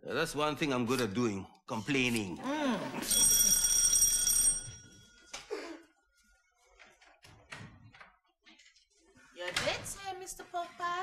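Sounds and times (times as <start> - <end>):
electric doorbell ringing: 3.1 - 5.3.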